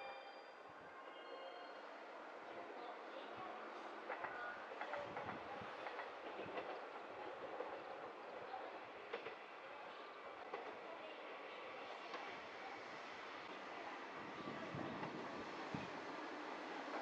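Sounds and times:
distant railcar rail hum: 0.0 - 17.0
light track clicks: 3.9 - 8.4, 9.1 - 9.5.

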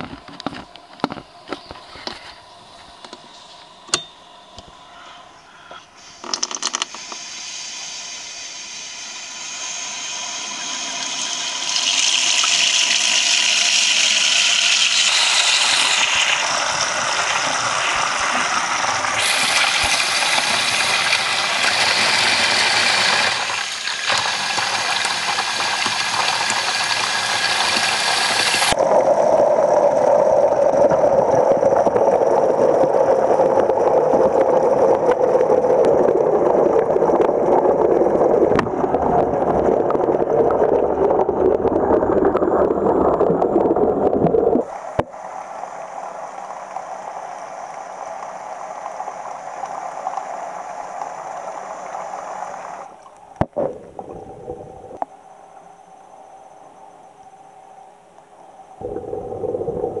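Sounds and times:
water pouring into a steel sink: 9.6 - 28.8
muffled underwater rush: 15.0 - 60.0.

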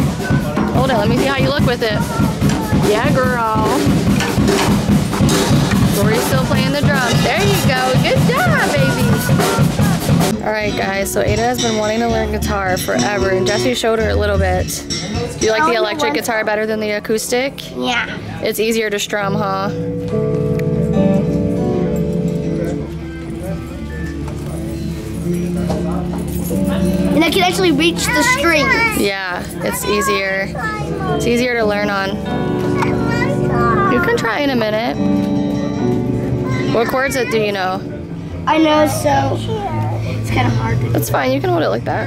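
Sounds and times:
child hitting drum kit: 0.0 - 10.4
electric guitar chords strummed: 19.8 - 29.9, 30.5 - 42.0.

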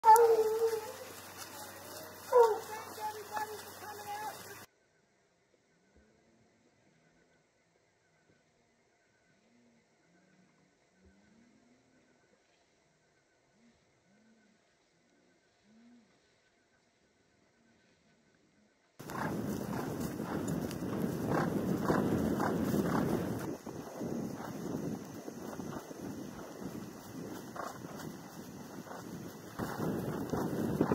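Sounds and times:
dog howling: 0.0 - 1.1, 2.3 - 3.6
hoofbeats on grass: 0.0 - 4.7, 19.0 - 30.9
wind on microphone: 19.0 - 30.9.

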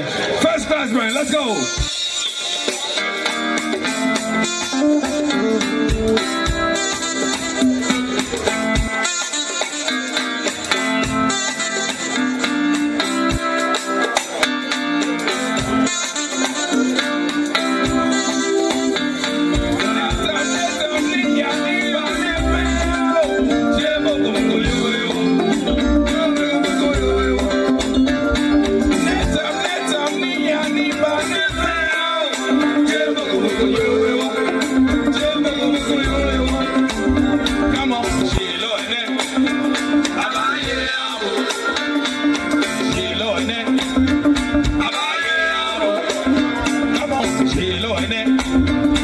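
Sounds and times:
guitar lines: 0.0 - 49.0
live band music: 0.0 - 49.0
man singing into microphone: 19.5 - 49.0
low drum beats: 22.1 - 29.5.

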